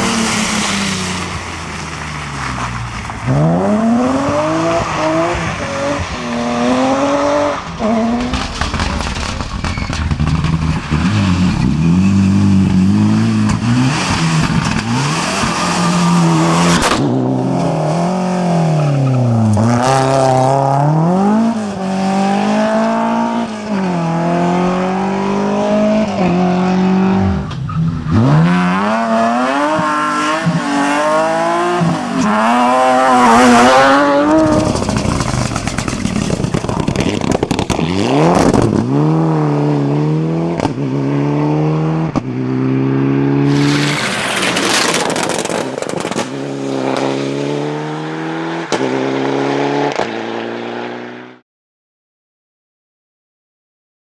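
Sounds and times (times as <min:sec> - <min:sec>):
rally car engines revving high: 0:00.0 - 0:51.4.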